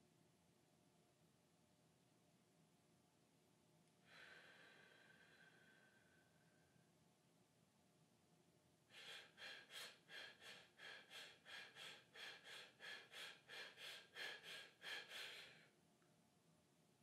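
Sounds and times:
man breathing rapidly: 4.1 - 6.4, 8.9 - 15.8.

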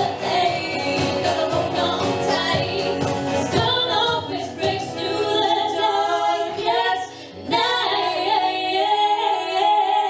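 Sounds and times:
live band playing: 0.0 - 5.7
women singing in harmony: 0.0 - 10.0.

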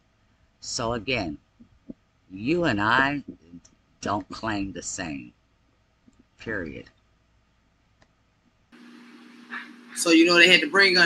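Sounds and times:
faint room noise: 0.0 - 11.0
low electrical hum: 0.0 - 11.0
woman speaking: 9.2 - 10.1.

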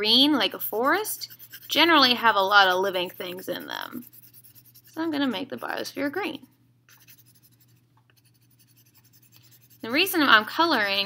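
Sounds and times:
colored pencil scratching on paper: 0.5 - 11.0.

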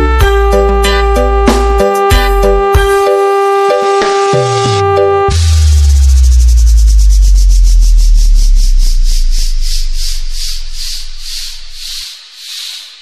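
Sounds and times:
rhythmic electronic hiss: 0.2 - 3.1, 5.3 - 13.0
deep bass boom: 5.3 - 12.0.

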